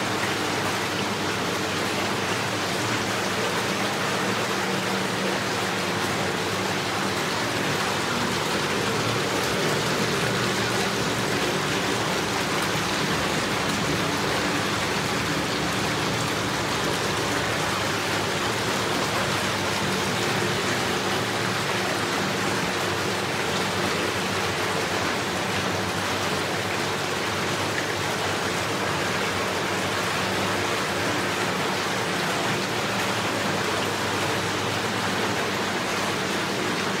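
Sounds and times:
spa bath water churning: 0.0s - 37.0s.

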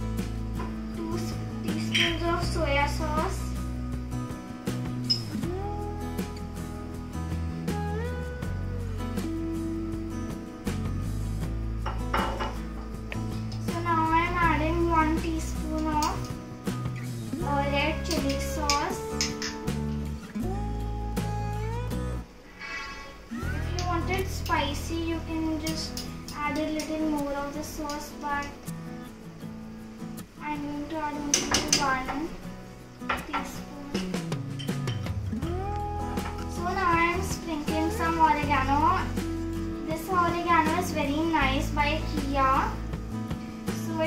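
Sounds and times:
song with singing voice: 17.3s - 22.4s, 35.4s - 42.0s.

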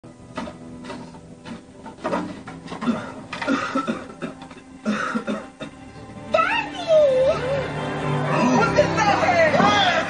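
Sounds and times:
quiet film score music: 0.0s - 10.0s.

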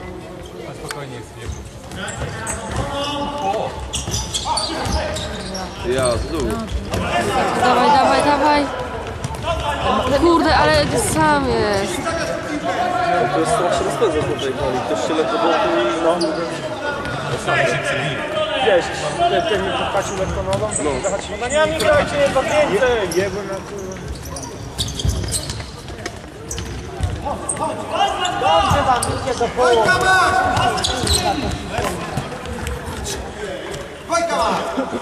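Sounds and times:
players calling out: 2.1s - 17.5s.

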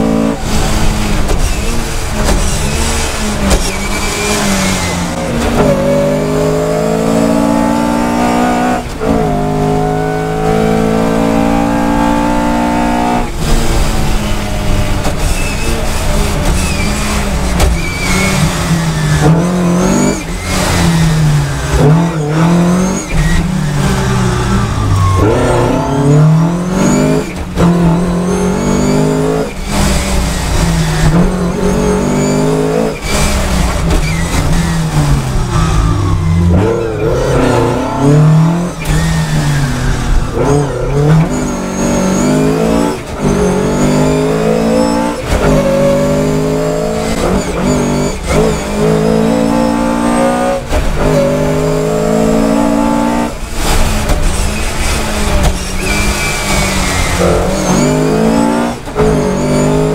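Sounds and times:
car engine revving hard: 0.0s - 59.9s.

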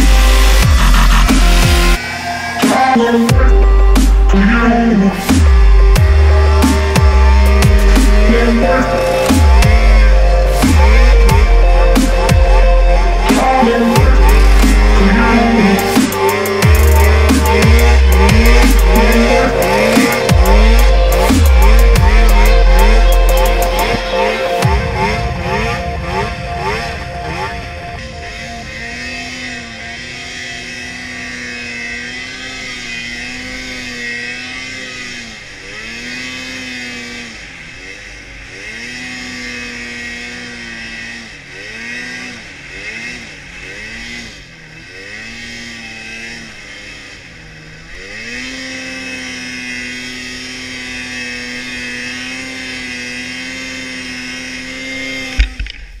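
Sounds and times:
snowmobile engine revving: 0.0s - 56.0s.

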